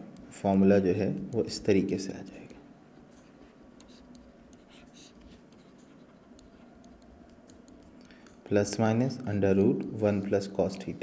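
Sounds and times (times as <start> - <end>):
stylus scratching on pen tablet: 2.3 - 8.0.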